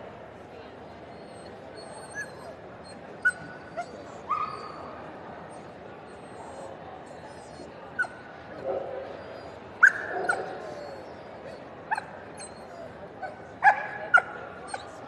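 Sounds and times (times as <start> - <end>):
murmur of large hall: 0.0 - 15.0
dog yipping and barking: 9.8 - 11.0, 11.9 - 12.6.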